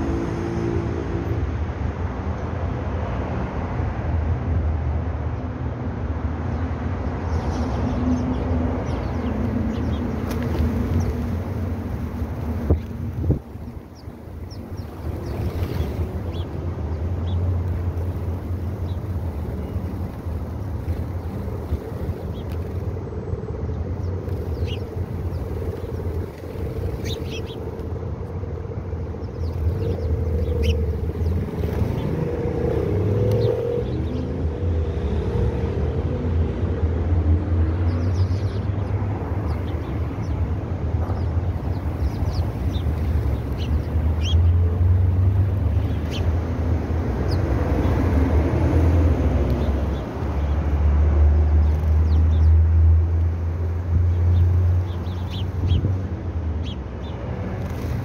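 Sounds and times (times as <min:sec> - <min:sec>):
high bird chirps: 0:27.0 - 0:27.6, 0:29.3 - 0:32.1, 0:41.2 - 0:44.6.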